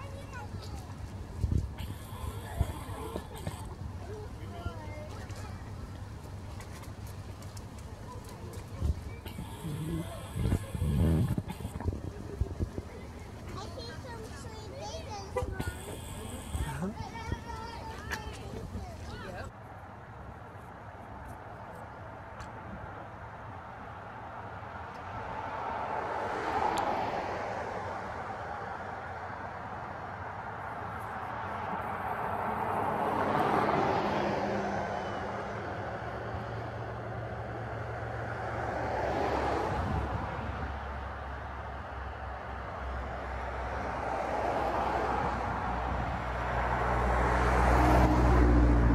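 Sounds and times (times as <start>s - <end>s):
low engine hum: 0.0s - 21.4s, 30.9s - 48.9s
vehicles passing: 0.0s - 48.9s.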